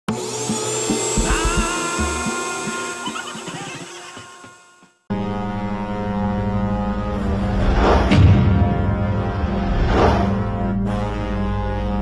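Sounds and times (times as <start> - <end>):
held synth tones: 1.0 - 4.7
loud rushing whoosh: 7.4 - 10.6.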